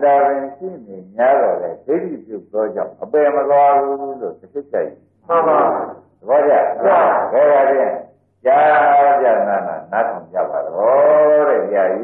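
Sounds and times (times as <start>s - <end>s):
faint steady hum: 0.0s - 12.0s
man chanting a talk: 0.0s - 12.0s.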